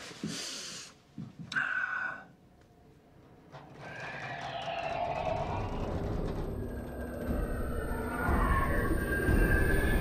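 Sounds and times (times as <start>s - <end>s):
wavering whinny-like morph effect: 3.6s - 10.0s.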